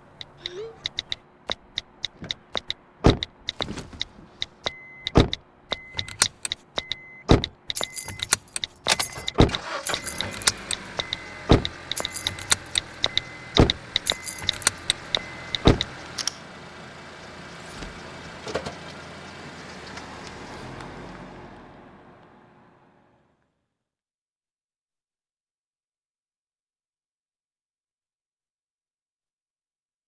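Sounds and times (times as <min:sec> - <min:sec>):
car warning chime beeping: 0:00.1 - 0:16.2
phone keyboard tap clicks: 0:00.2 - 0:09.4
car keys jangling: 0:00.8 - 0:16.4
deep thump: 0:03.0 - 0:03.8, 0:07.3 - 0:07.5.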